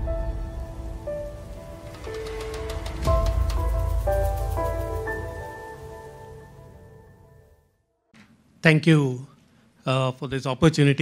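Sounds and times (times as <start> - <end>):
low rumble: 0.0 - 7.1.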